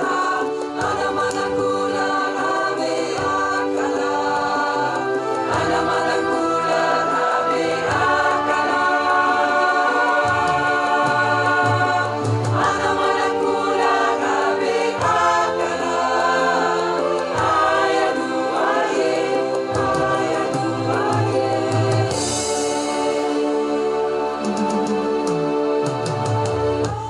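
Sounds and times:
mixed choir singing in harmony: 0.0 - 27.0.

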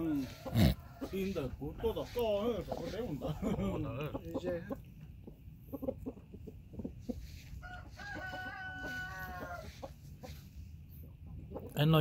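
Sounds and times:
rooster clucking: 0.0 - 11.8
rooster crowing: 7.3 - 9.9.

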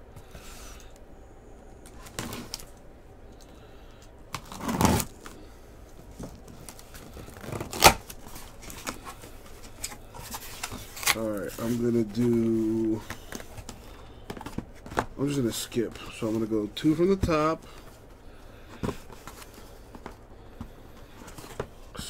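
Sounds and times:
soft handling noise: 1.8 - 22.0
cardboard scraping rustle: 4.4 - 5.2, 6.2 - 13.7
cardboard snapping: 7.3 - 8.2.

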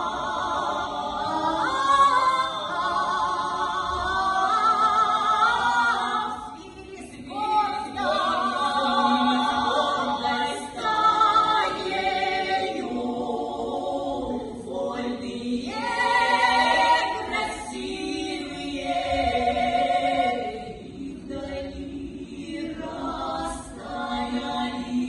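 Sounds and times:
women singing in harmony: 0.0 - 25.0.

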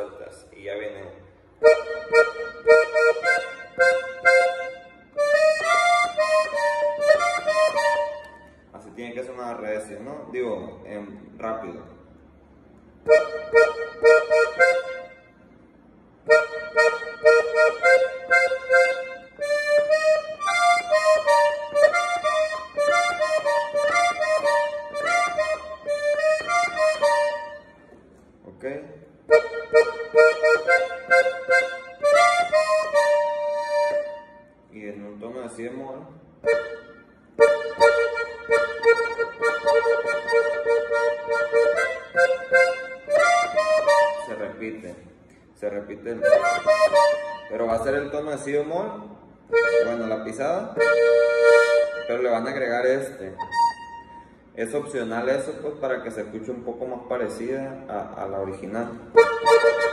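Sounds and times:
accordion melody: 1.5 - 10.0, 12.4 - 28.4, 29.1 - 35.8, 36.4 - 57.4, 58.2 - 59.9.

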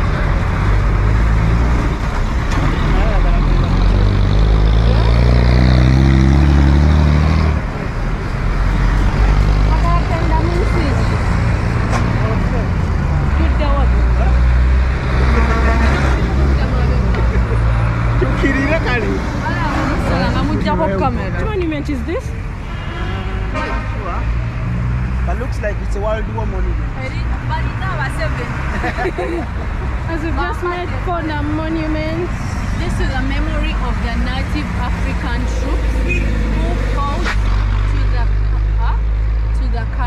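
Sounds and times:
bus engines running: 0.0 - 40.0
heavy engine: 0.0 - 40.0
street traffic: 0.0 - 40.0.

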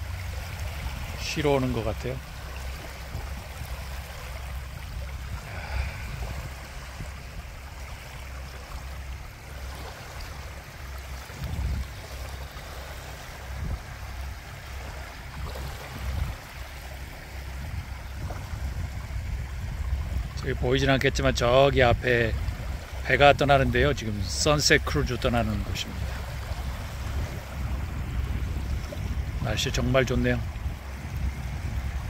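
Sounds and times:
low uneven rumble: 0.0 - 32.0
small waves lapping on shore: 0.0 - 32.0.

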